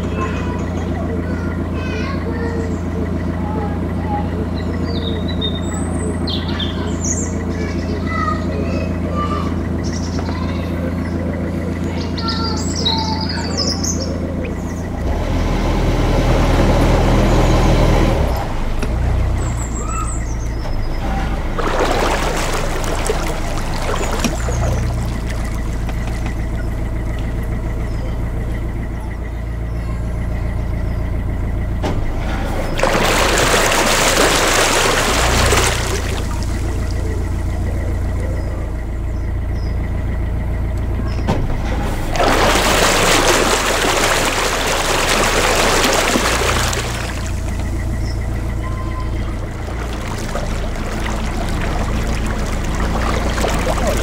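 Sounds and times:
birds chirping: 0.0s - 54.0s
boat diesel engine running: 0.0s - 54.0s.

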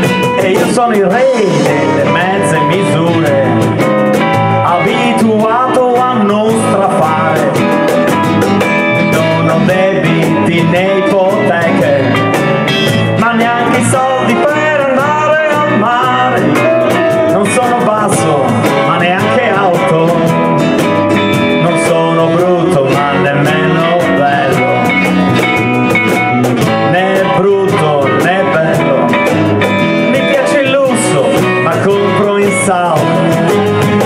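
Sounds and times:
live band playing: 0.0s - 34.0s.

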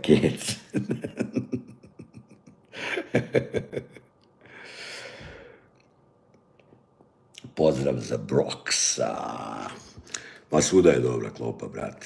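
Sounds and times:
man chuckling: 0.3s - 4.2s
breathy exhale: 4.4s - 5.7s, 10.0s - 10.5s.

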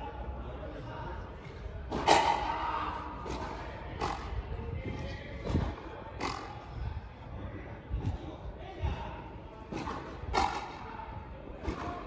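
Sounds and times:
rubber ball hitting rackets: 9.7s - 10.8s.

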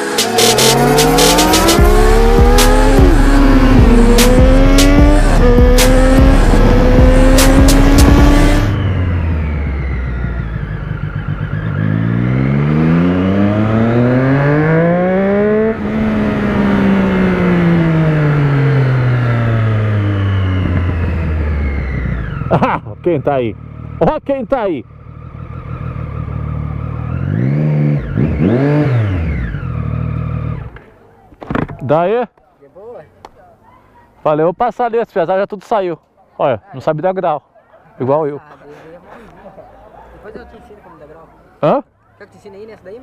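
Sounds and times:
music beat: 0.0s - 8.8s
motorcycle engine accelerating: 0.0s - 30.9s.

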